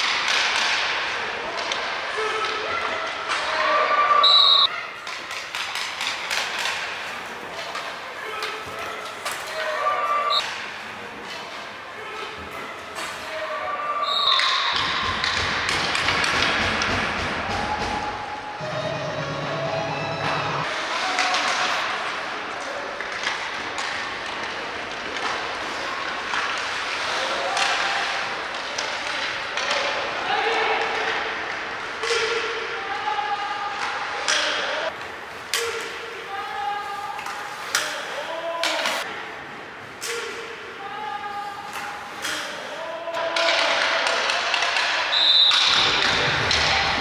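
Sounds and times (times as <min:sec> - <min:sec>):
hockey sticks and puck clacking: 0:00.0 - 0:03.9, 0:04.6 - 0:33.0, 0:33.7 - 0:39.1, 0:39.8 - 0:47.0.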